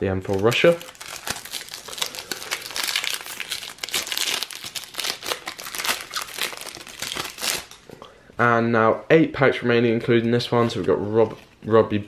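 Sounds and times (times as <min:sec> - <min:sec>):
foil wrapper crinkling: 0:00.3 - 0:07.8.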